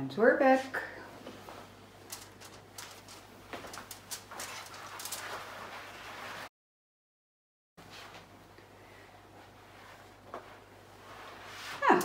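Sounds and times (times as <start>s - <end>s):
aluminium foil crinkling: 2.0s - 5.7s.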